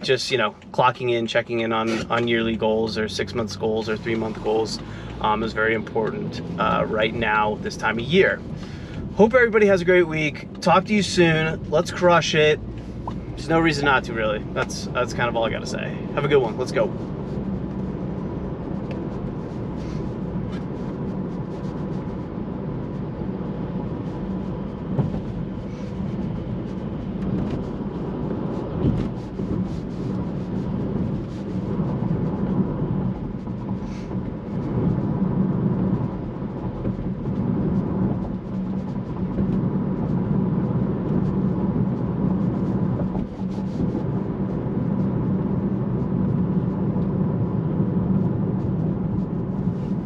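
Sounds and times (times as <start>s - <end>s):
engine and tyre drone: 0.0s - 50.0s.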